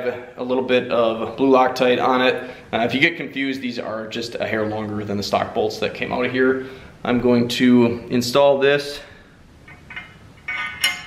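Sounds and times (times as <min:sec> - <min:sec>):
metallic clinks of bolt: 0:09.7 - 0:11.0.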